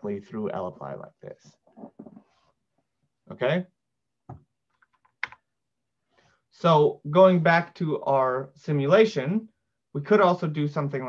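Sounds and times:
computer keyboard taps: 0:04.3 - 0:05.4.

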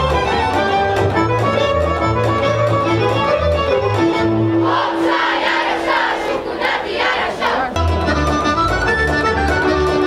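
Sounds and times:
children shouting in unison: 0:04.6 - 0:07.7.

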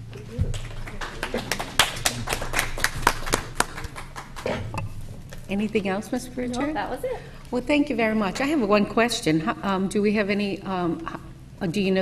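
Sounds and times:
people clapping: 0:00.0 - 0:04.8.

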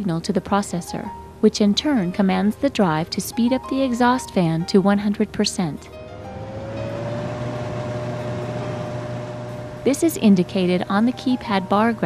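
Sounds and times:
exhaust fan whirring: 0:05.4 - 0:12.0
low hum: 0:05.9 - 0:11.7.

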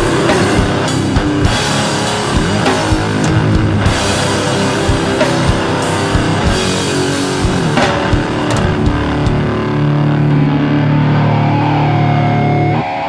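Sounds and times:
distorted electric guitar: 0:00.0 - 0:13.0
drums: 0:00.0 - 0:13.0.

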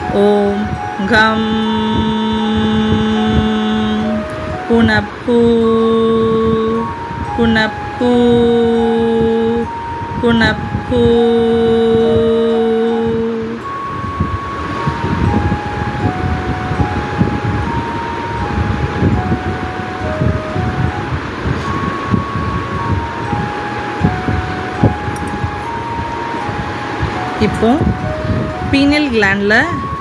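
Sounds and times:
slow melody of held notes: 0:00.0 - 0:30.0.

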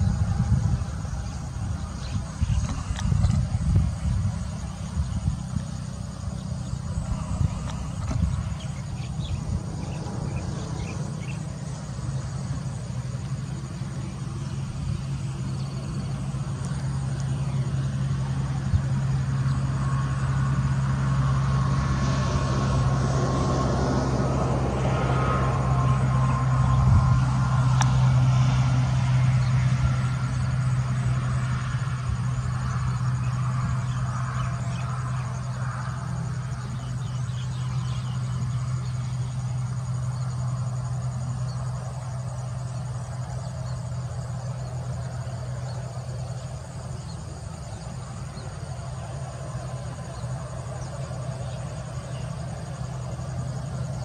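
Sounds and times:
low engine hum: 0:00.0 - 0:54.0.

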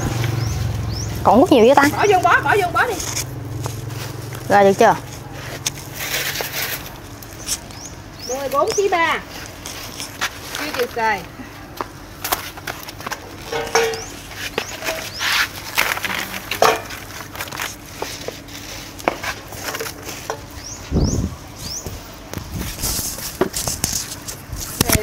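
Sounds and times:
baskets rustling and knocking: 0:12.2 - 0:20.7.

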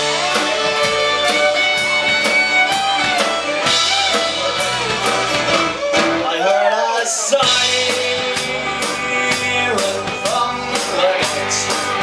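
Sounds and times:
bass: 0:00.0 - 0:12.0
driving drum beat: 0:00.0 - 0:12.0
fiddle: 0:00.0 - 0:12.0
strummed guitars: 0:00.0 - 0:12.0.

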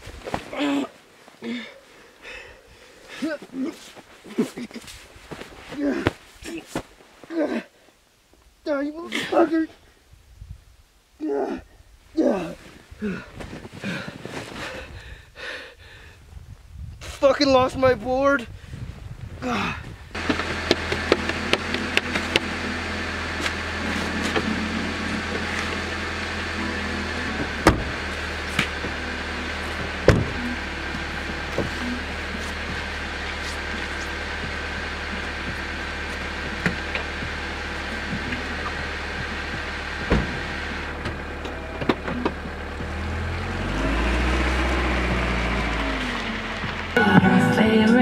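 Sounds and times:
car engine idling: 0:20.2 - 0:47.8
car door shutting: 0:27.0 - 0:29.0, 0:29.7 - 0:32.9, 0:38.1 - 0:43.2
knock on car: 0:40.0 - 0:40.4
music with singing: 0:47.0 - 0:48.0.

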